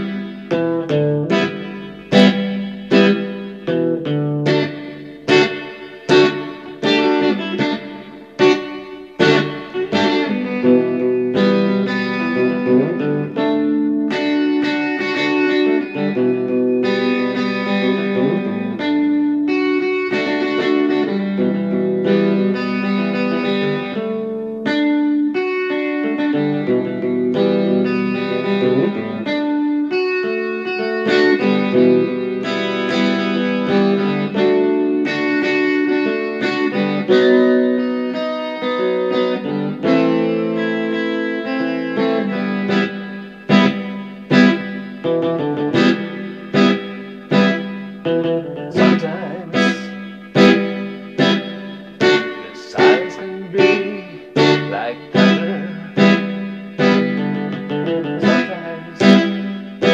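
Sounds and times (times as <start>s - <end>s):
electric guitar chords: 0.0s - 59.9s.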